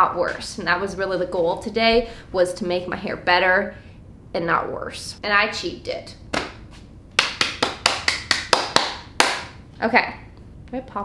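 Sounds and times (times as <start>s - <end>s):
person clapping hands quickly: 7.2s - 9.6s.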